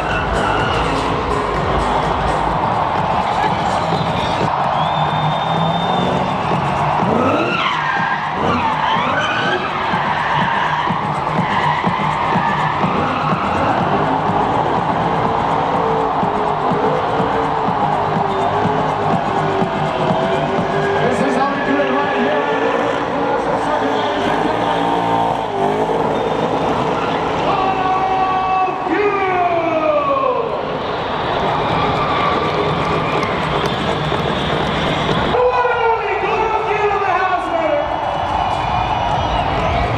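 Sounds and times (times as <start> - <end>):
music: 0.0 - 24.7, 31.0 - 39.9
car engine revving: 0.0 - 28.2
crowd voices: 0.0 - 39.9
tyres squealing: 7.0 - 14.5.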